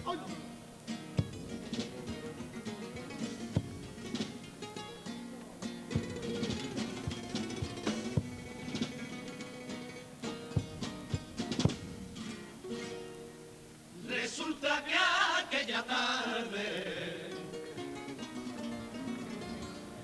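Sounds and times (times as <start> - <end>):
guitars playing: 0.0 - 14.0, 17.1 - 20.0
drum strokes: 1.0 - 13.0.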